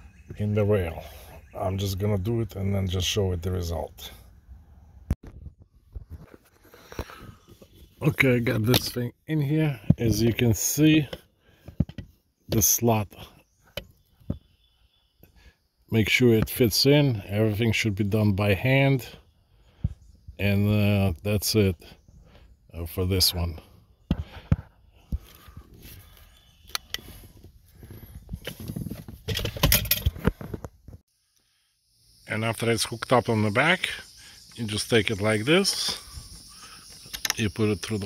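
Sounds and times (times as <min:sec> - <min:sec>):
handling clicks and knocks: 0:11.1 - 0:12.2, 0:28.3 - 0:30.8.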